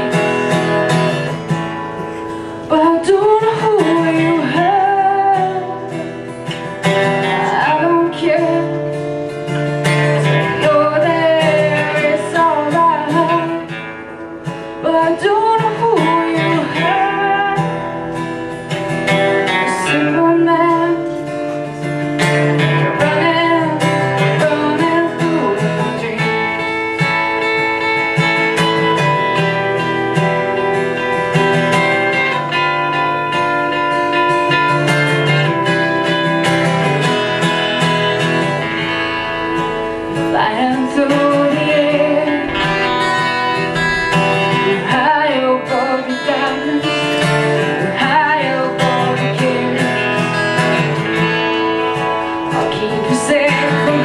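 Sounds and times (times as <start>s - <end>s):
acoustic guitars playing: 0.0s - 54.0s
woman singing: 2.6s - 14.0s, 14.7s - 18.4s, 19.3s - 28.0s, 40.1s - 54.0s.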